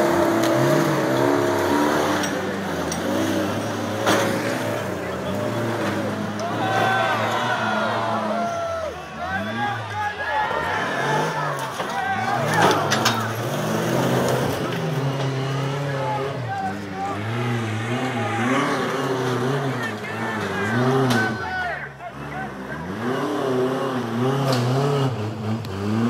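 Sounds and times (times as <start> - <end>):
buggy engine revving hard: 0.0 - 26.0.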